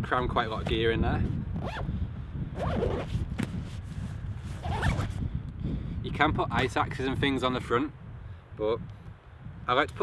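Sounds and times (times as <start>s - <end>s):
zipper rasping: 1.6s - 1.9s, 2.6s - 5.2s.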